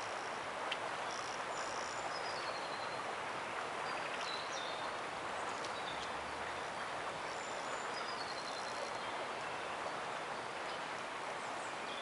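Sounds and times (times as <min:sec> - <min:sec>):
river flowing: 0:00.0 - 0:12.0.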